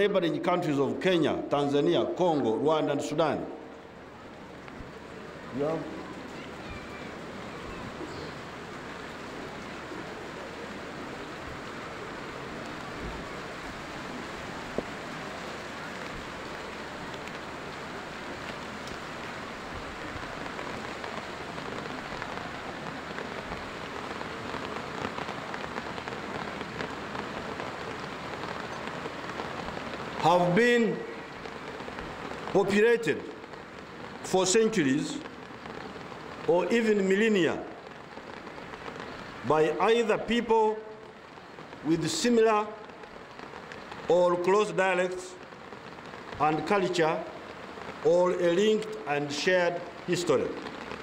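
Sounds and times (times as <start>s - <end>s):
steady rain falling: 0.0s - 51.0s.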